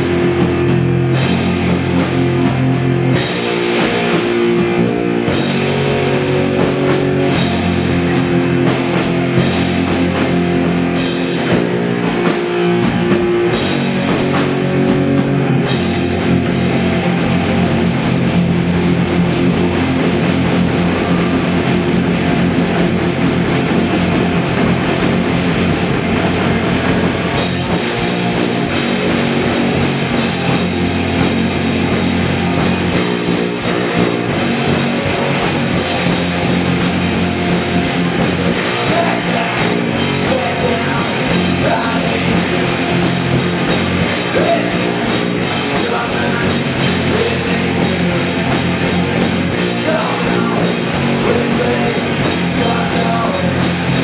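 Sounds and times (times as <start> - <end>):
drum kit: 0.0 - 54.0
electric guitars: 0.0 - 54.0
punk rock band playing live: 0.0 - 54.0.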